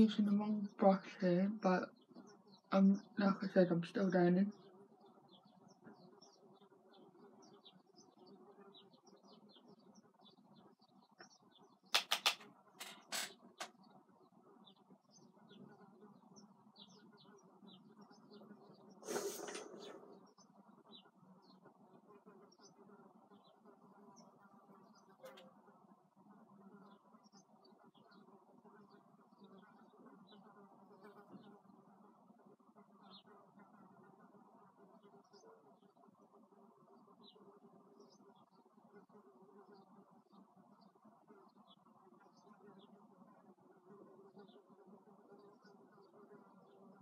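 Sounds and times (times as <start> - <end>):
small birds chirping: 0.0 - 31.9, 32.8 - 47.0
sharp clicks: 11.9 - 13.7.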